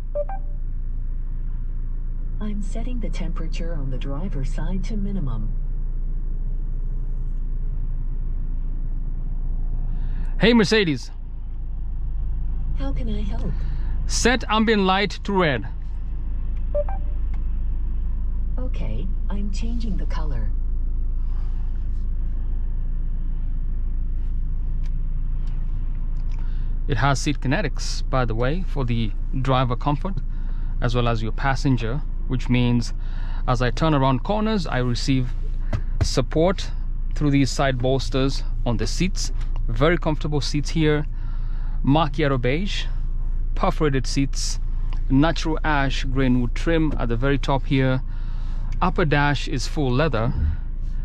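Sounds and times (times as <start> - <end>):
short electronic beeps: 0.0 - 0.6, 16.7 - 17.2
road noise rumble in car: 0.0 - 51.0.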